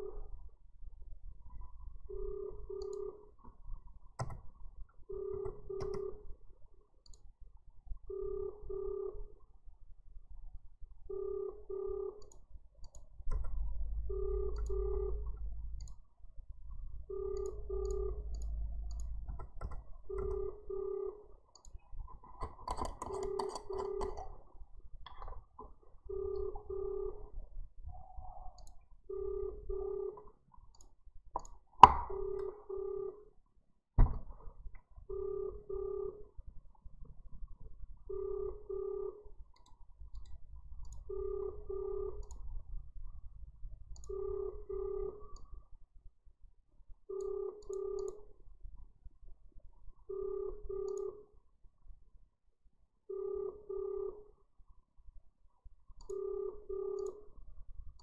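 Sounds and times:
telephone ringback beeps: 2.1 - 3.2, 5.1 - 6.2, 8.1 - 9.3, 11.1 - 12.2, 14.0 - 15.2, 17.1 - 18.6, 20.1 - 21.3, 23.1 - 24.4, 26.1 - 27.4, 29.1 - 30.2, 32.1 - 33.3, 35.1 - 36.3, 38.1 - 39.3, 41.1 - 42.2, 44.1 - 45.4, 47.1 - 48.3, 50.1 - 51.3, 53.1 - 54.3, 56.1 - 57.3
click: 2.8 - 3.6, 7.0 - 7.3, 12.2 - 13.7, 14.5 - 16.0, 17.4 - 20.4, 21.5 - 24.3, 28.5 - 29.0, 30.2 - 32.6, 39.5 - 41.1, 42.2 - 42.5, 43.9 - 44.2, 45.3 - 45.5, 47.2 - 48.2, 50.9 - 51.1, 55.9 - 56.2, 57.0 - 57.2
low rumble: 13.3 - 20.7
telephone ringback double beep: 20.1 - 21.2, 23.2 - 24.3, 26.1 - 27.3, 35.1 - 36.2, 47.1 - 48.2, 53.1 - 54.2, 56.1 - 57.3.

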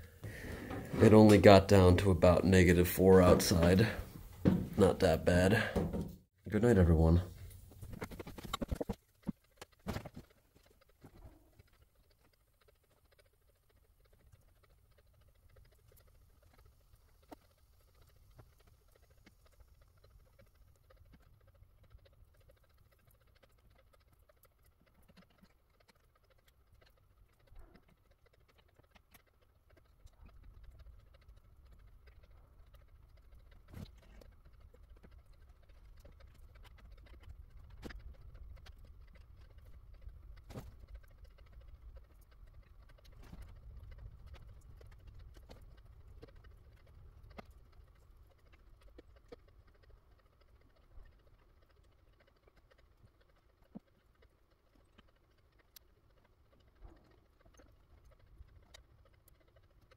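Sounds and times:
small clicks and ticks: 0.0 - 59.9.

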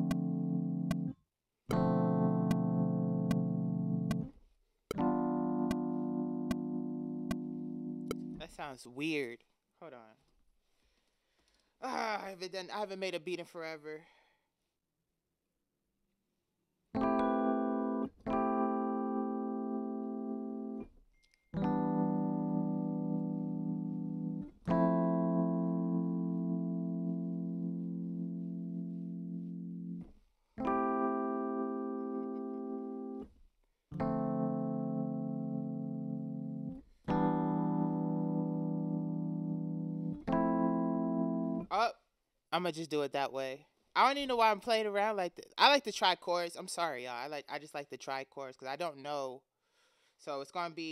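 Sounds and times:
electric piano chords: 0.0 - 8.4, 17.0 - 20.9, 21.5 - 33.3, 33.9 - 41.7.

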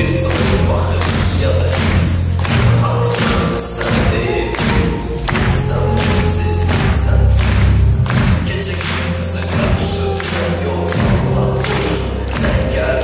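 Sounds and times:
live pop band music: 0.0 - 13.0.

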